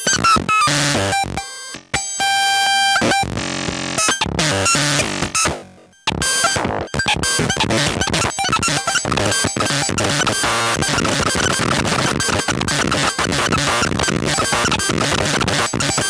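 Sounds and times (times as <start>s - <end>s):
glitchy digital synth noise: 4.1s - 16.0s.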